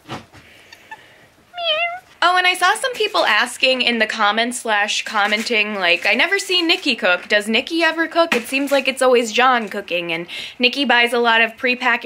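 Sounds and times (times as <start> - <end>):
cat meowing: 0.9 - 2.1.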